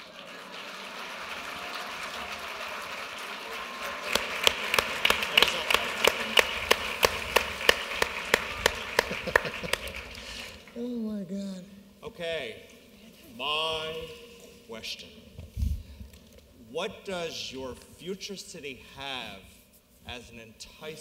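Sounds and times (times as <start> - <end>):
close sharp hand claps: 0.0 - 10.6
audience applauding: 0.0 - 10.7.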